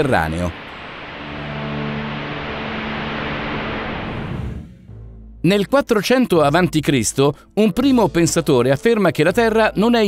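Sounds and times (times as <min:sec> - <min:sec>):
rushing rumble: 0:00.0 - 0:05.1.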